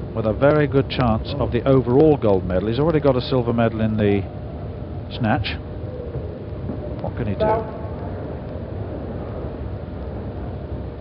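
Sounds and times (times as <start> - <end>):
hall background rumble and hiss: 0.0 - 11.0.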